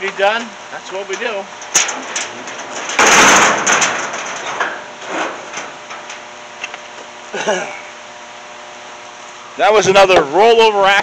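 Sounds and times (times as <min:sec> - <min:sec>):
metal door clanging shut: 0:01.1 - 0:06.2.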